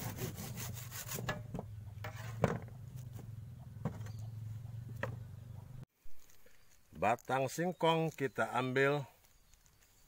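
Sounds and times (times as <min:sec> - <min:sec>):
hand saw cutting a stem: 0:00.0 - 0:01.5.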